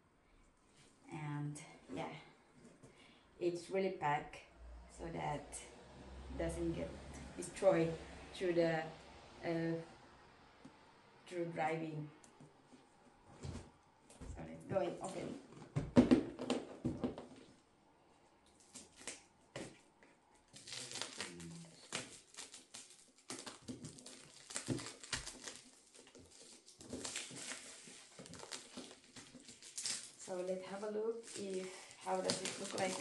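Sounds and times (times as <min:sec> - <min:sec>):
person speaking: 0:03.4 - 0:09.9, 0:11.3 - 0:12.2, 0:14.2 - 0:15.5, 0:30.2 - 0:33.0
plastic film crinkling: 0:18.5 - 0:33.0.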